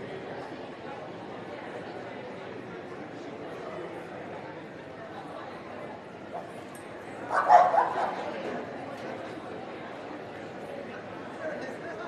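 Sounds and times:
dog barking: 7.3 - 8.2.

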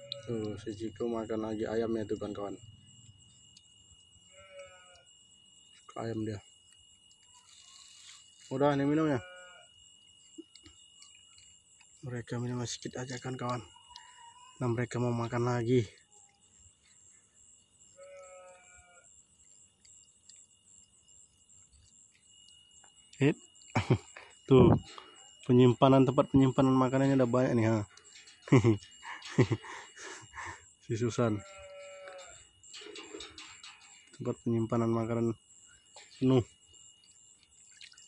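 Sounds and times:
crickets chirping: 0.0 - 38.0
thin steady high tone: 0.0 - 38.0.

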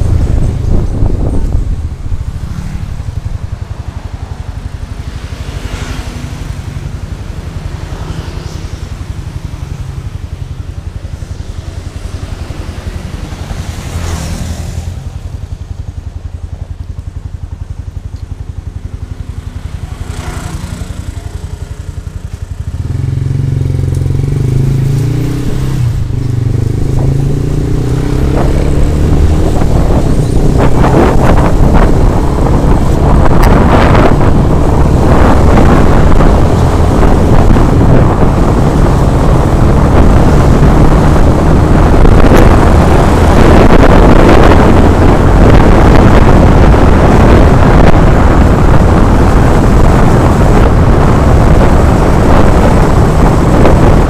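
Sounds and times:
motorcycle engine accelerating: 0.0 - 54.0
wind rumble on microphone: 0.0 - 54.0.

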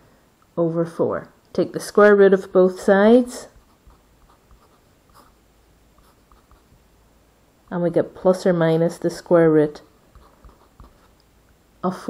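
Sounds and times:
pen scratching on paper: 3.5 - 5.4, 6.0 - 6.7, 10.1 - 11.2.

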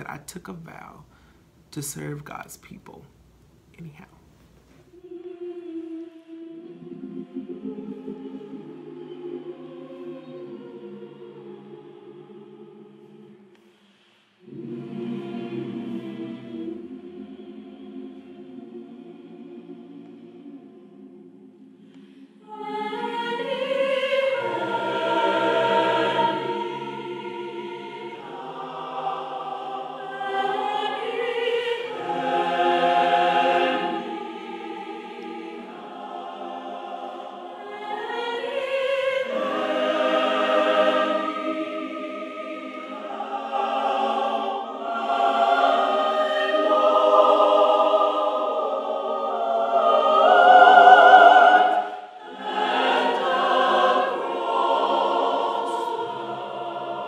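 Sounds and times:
mixed choir singing: 4.9 - 57.0.

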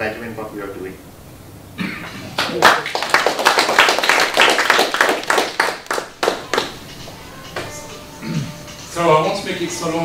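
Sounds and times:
small group applauding: 2.3 - 6.8.

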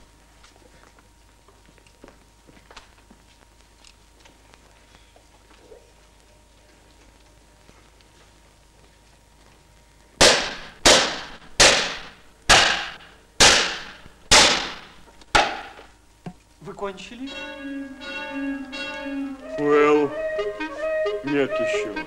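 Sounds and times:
pistol shots: 10.2 - 15.8.

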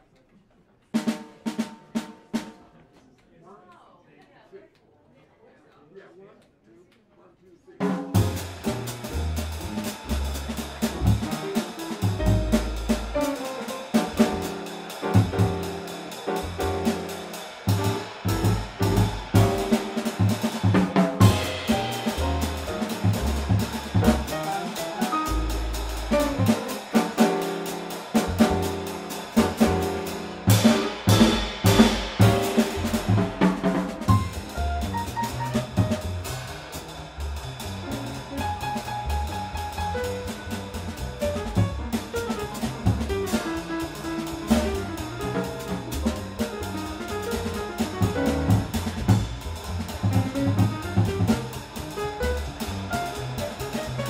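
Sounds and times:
jazz piano trio playing: 7.8 - 54.0.

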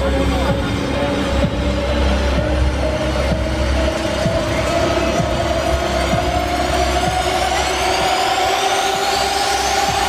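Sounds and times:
electronic dance music: 0.0 - 10.0
heavy bass drone: 0.0 - 10.0.

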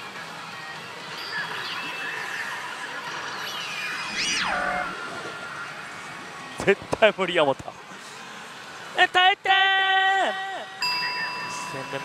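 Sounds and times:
slot machine electronic sounds: 0.9 - 6.0
sliding electronic tones: 1.2 - 6.3
rising and falling sweep: 1.9 - 6.5.

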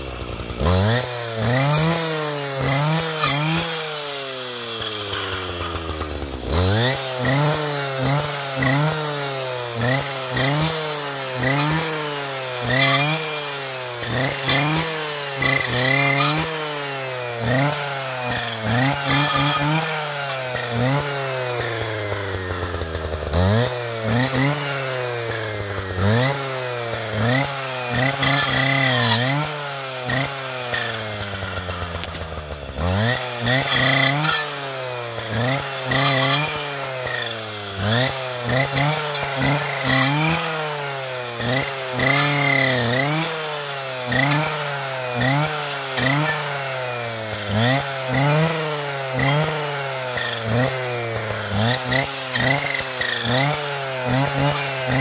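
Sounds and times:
brushcutter engine revving: 0.0 - 55.0
saw blade cutting brushwood: 0.0 - 55.0.

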